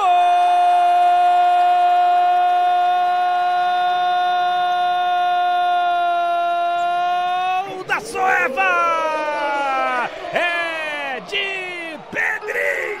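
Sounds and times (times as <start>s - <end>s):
man shouting long goal cry: 0.0s - 13.0s.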